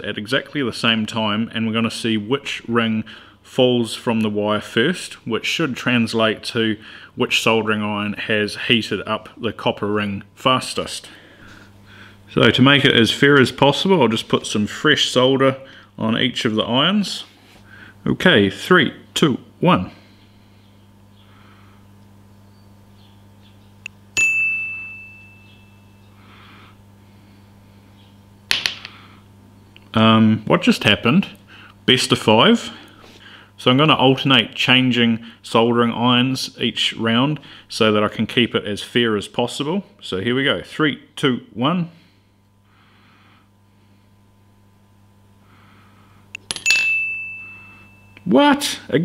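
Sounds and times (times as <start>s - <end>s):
steady low hum: 0.0s - 49.0s
metal ring striking a vise: 24.2s - 26.0s, 46.4s - 48.3s.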